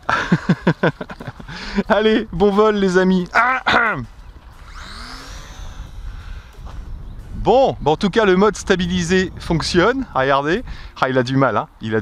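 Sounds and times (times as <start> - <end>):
wind rumbling on microphone: 4.0 - 12.0
model plane motor whining: 4.1 - 7.0.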